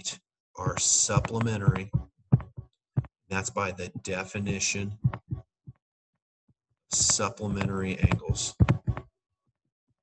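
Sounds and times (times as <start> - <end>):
short low thumps: 0.6 - 3.2, 3.8 - 5.8, 7.0 - 9.1.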